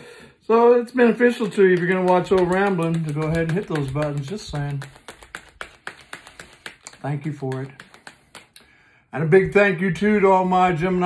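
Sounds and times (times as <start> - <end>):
cards shuffling: 1.4 - 8.6.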